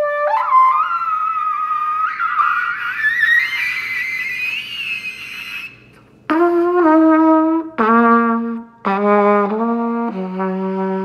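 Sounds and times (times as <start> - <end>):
high trumpet note: 0.0 - 11.0.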